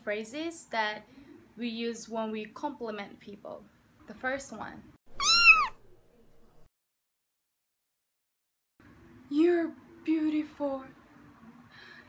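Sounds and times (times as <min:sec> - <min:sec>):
cat meowing: 0:05.1 - 0:05.8.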